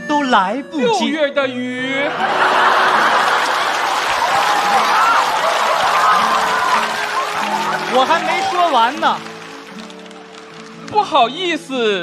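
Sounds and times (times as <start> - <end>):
audience applauding: 2.1 - 11.6.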